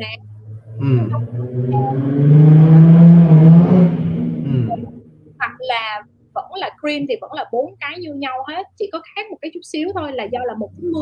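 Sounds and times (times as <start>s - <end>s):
vehicle engine running: 0.0s - 8.8s.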